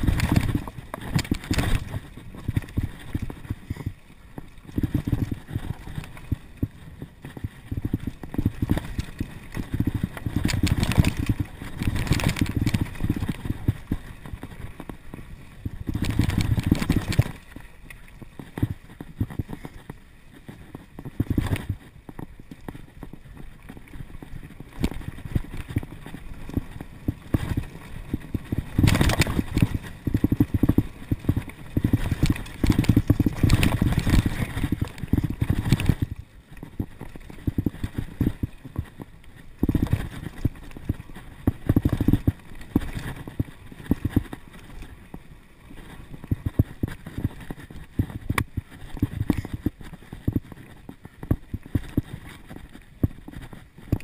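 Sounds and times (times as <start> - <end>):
bike rattling over bumps: 0.0 - 54.0
wind rumble on microphone: 0.0 - 54.0.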